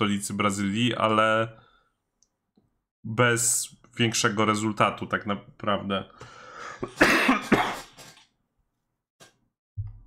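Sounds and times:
man coughing: 6.8s - 8.3s.

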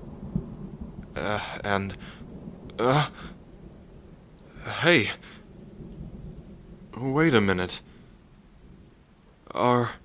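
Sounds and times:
low rumble of thunder: 0.0s - 10.0s
steady rain: 0.0s - 10.0s.

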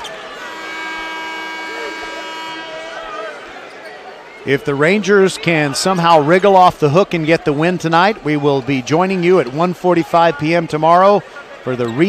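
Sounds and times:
crowd murmur: 0.0s - 12.0s
scoreboard horn blast: 0.2s - 3.6s.

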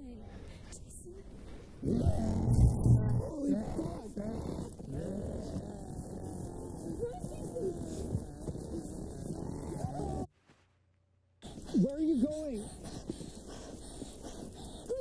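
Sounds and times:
distorted wailing voice: 5.4s - 10.3s.

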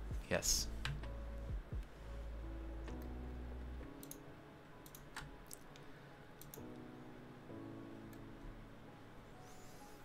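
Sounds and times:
computer mouse clicks: 4.0s - 4.2s, 4.8s - 6.9s.

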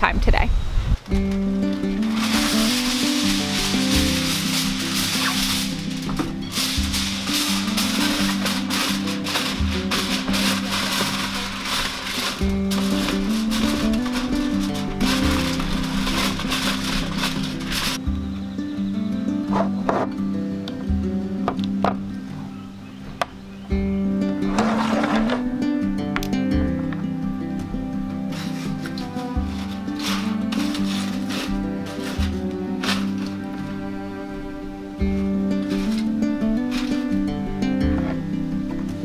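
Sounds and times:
acoustic music: 1.0s - 39.0s
aluminium foil crinkling: 1.2s - 18.0s, 28.3s - 33.5s, 35.6s - 37.4s.

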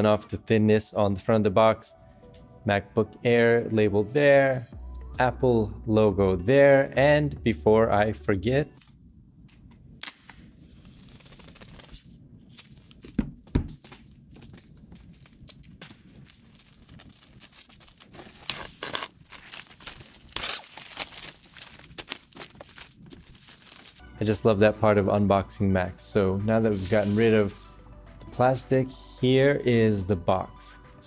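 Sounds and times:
plastic wrap tearing and crinkling: 10.0s - 24.0s.

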